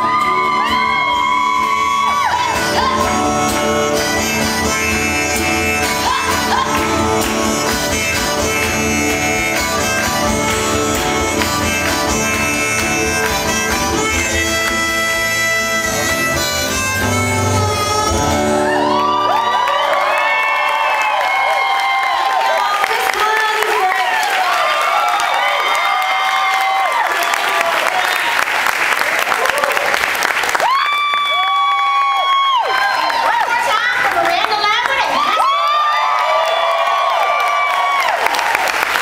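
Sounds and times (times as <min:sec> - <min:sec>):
long high shouts: 0:00.0 - 0:04.4, 0:18.1 - 0:22.8, 0:30.6 - 0:33.8, 0:35.0 - 0:38.3
audience cheering and whooping: 0:00.0 - 0:04.8, 0:05.8 - 0:08.3, 0:18.1 - 0:39.0
acoustic guitar notes: 0:00.7 - 0:19.0
audience clapping: 0:05.4 - 0:15.3, 0:18.8 - 0:39.0.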